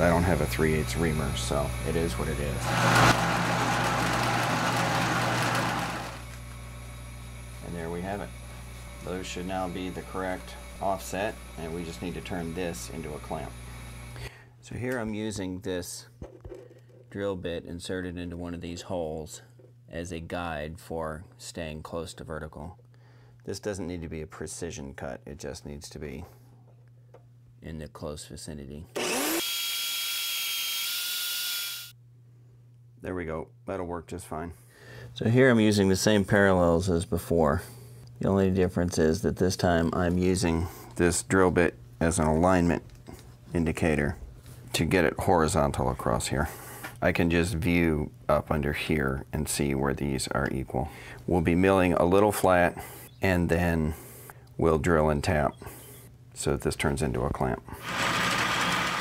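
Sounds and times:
drill press motor humming: 1.3 - 14.2, 29.0 - 31.9, 57.8 - 59.0
drill cutting into metal: 2.6 - 6.3, 29.0 - 31.9, 57.8 - 59.0.

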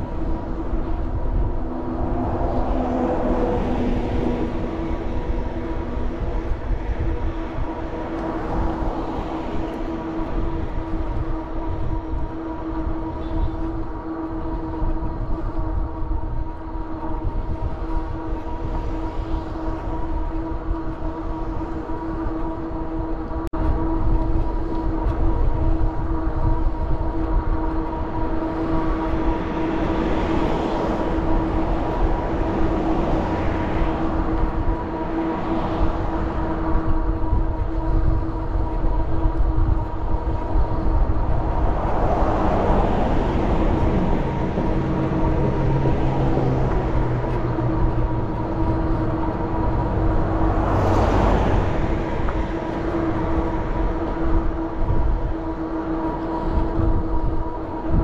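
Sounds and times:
tyre and road noise: 0.0 - 58.0
wind rushing across microphone: 0.0 - 58.0
electric bike motor whining: 3.6 - 58.0.

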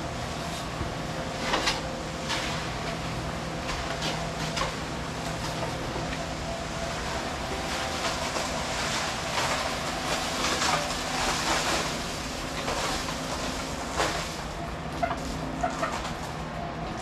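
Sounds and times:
concrete churning in drum: 0.0 - 17.0
concrete mixer motor humming: 0.0 - 17.0.

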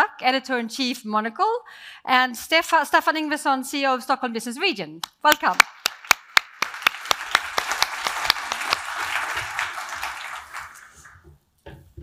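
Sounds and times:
audience applauding: 5.6 - 11.2.

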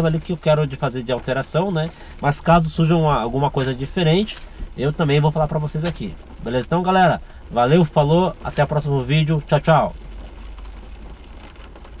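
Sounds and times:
rain on car roof: 0.0 - 12.0.

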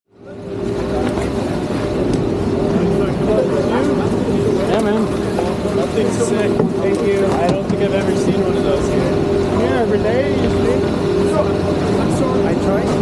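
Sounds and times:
people talking in background: 0.1 - 13.0
chairlift mechanical hum: 0.2 - 13.0.

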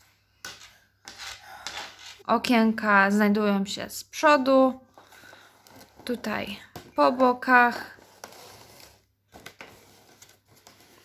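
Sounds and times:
cardboard rustling: 7.6 - 11.0.

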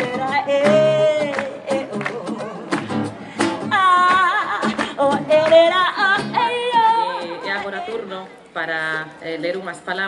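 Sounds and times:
woman singing: 0.0 - 2.8, 3.6 - 9.0
strummed acoustic guitar: 0.0 - 8.2.

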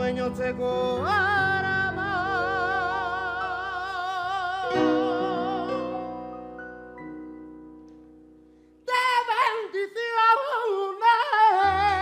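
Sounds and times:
man singing with vibrato: 0.0 - 6.5, 8.8 - 12.0.

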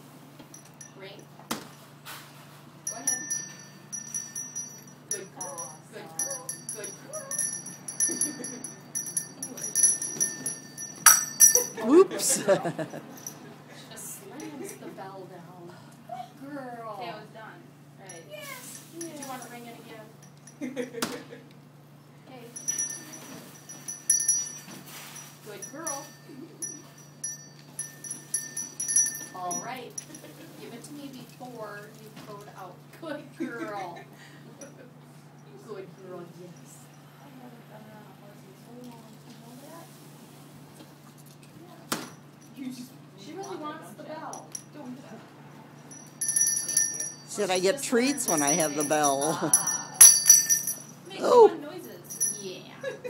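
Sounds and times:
handbell clanging: 2.8 - 13.4, 18.1 - 19.6, 22.6 - 30.3, 44.3 - 44.7, 45.8 - 51.0, 51.8 - 52.8.

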